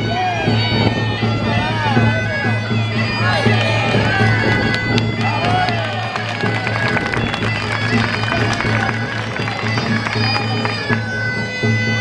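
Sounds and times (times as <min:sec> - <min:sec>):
bagpipe dance tune with drone: 0:00.0 - 0:12.0
drum beats: 0:01.1 - 0:11.5.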